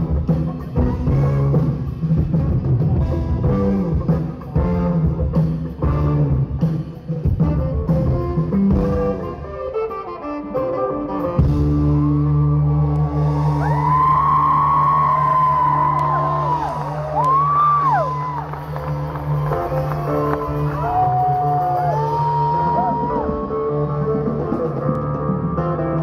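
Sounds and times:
saxophone: 0.0 - 13.1
live band playing instrumental: 0.0 - 26.0.

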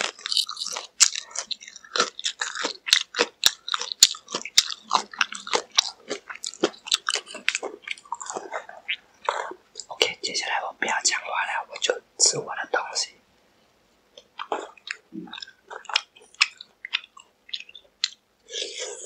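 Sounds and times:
crunchy chewing: 0.0 - 10.2, 14.1 - 19.0
wet chewing: 0.0 - 10.2, 14.2 - 19.0.

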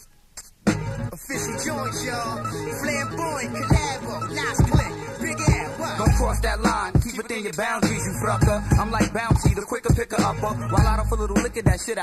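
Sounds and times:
rapping over a beat: 1.1 - 12.0
heavy kick drums: 3.7 - 3.9, 4.6 - 4.9, 5.5 - 7.2, 7.8 - 10.1, 10.8 - 11.8.

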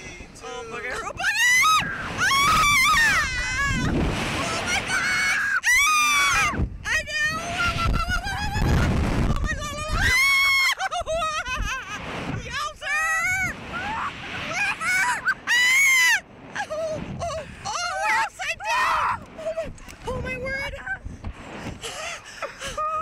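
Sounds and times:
wind rumbling over microphone: 0.0 - 23.0
riders screaming and yelling: 1.0 - 6.6.

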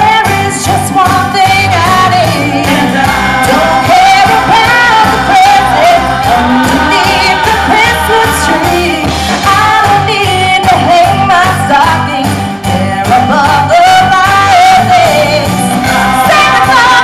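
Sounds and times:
amplified backing music with beat: 0.0 - 17.0
live pop singing: 0.0 - 17.0.

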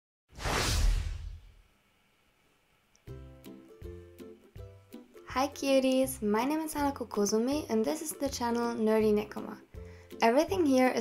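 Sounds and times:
whoosh with low rumble: 0.4 - 1.6.

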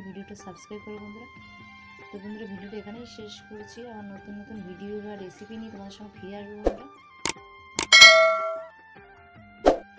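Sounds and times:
mouse clicks: 7.8 - 8.6
notification bell ding: 7.8 - 8.7.

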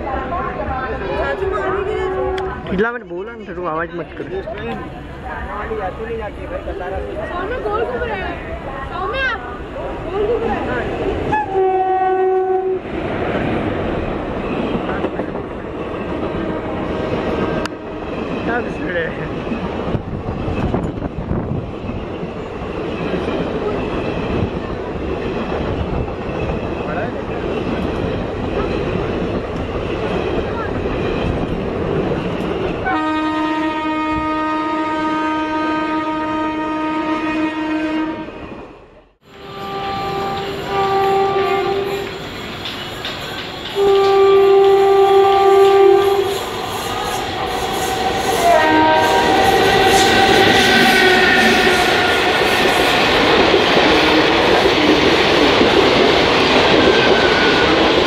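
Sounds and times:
train wheels rumbling and clattering: 0.0 - 35.0, 38.3 - 58.0
train horn blast: 1.3 - 2.7, 11.3 - 12.9, 32.8 - 38.4, 39.2 - 42.2, 43.8 - 52.6.

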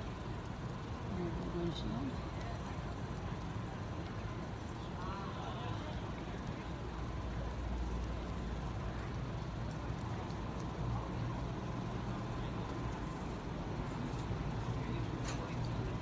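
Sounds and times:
outdoor background noise: 0.0 - 16.0
steady low hum: 0.0 - 16.0.

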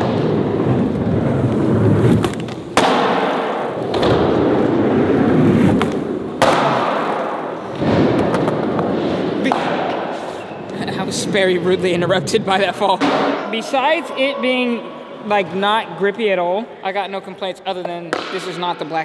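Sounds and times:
skateboard wheels rolling on concrete: 0.0 - 9.6
skateboard impacts: 0.0 - 10.2.

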